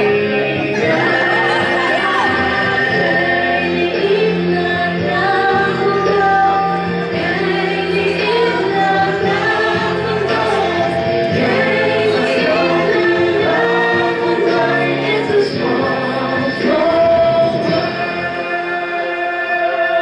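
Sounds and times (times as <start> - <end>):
men and women singing in chorus: 0.0 - 20.0.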